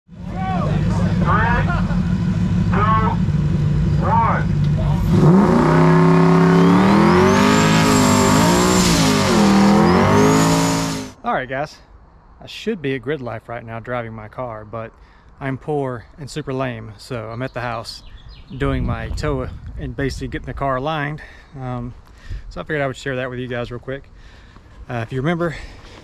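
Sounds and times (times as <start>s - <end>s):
car engine revving: 0.1s - 11.2s
people shouting: 0.2s - 1.8s
tyres squealing: 4.0s - 11.1s.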